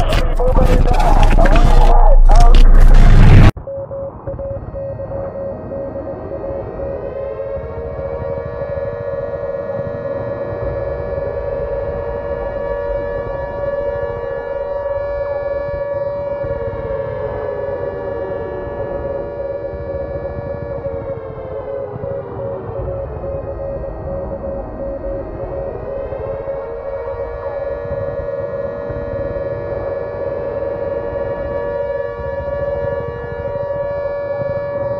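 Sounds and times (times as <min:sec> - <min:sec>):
low rumble: 0:00.0 - 0:08.6
siren-like wail: 0:00.0 - 0:34.9
steady pulsing tone: 0:00.0 - 0:34.9.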